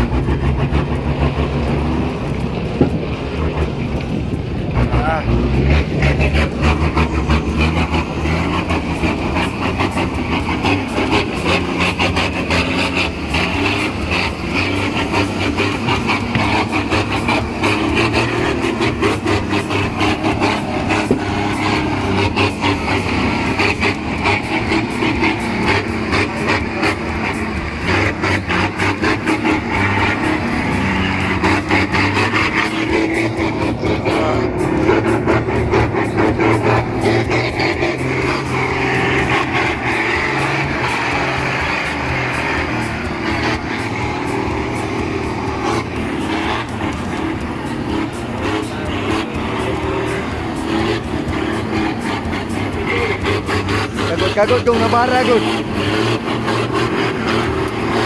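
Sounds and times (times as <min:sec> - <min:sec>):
pickup engine under load: 0:00.0 - 0:58.0
truck engine under load: 0:00.0 - 0:58.0.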